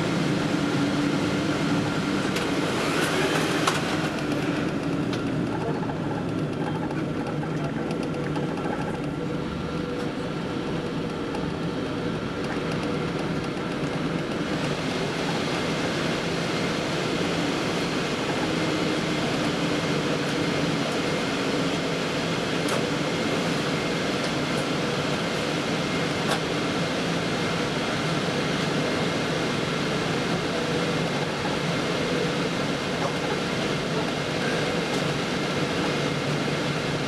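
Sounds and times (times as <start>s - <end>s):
jet engines at low power: 0.0s - 37.0s.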